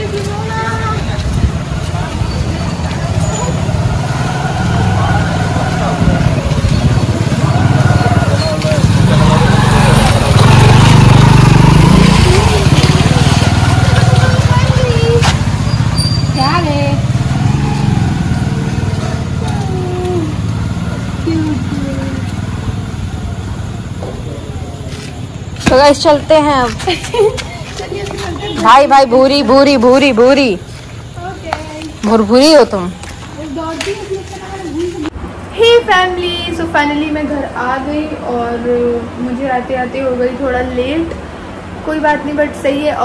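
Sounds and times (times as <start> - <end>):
people's voices: 0.0 - 43.0
vehicle engine rumble: 0.0 - 43.0.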